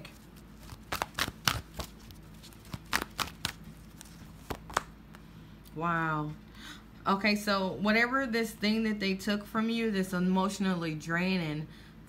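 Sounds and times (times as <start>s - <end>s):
cards snapping and clicking: 0.6s - 4.9s.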